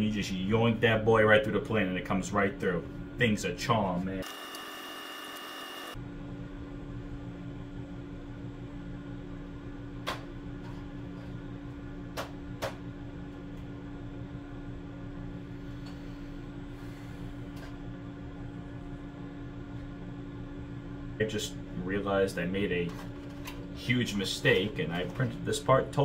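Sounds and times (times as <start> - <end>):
low machine hum: 0.0 - 26.0.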